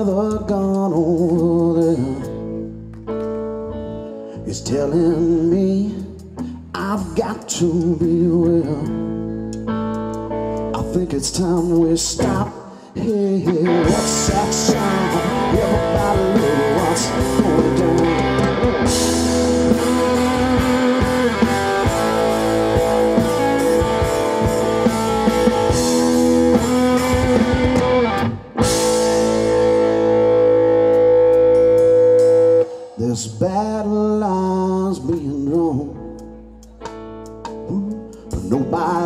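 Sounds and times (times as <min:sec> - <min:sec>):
bass guitar: 0:00.0 - 0:39.0
electric guitar: 0:00.0 - 0:39.0
drum kit: 0:09.6 - 0:39.0.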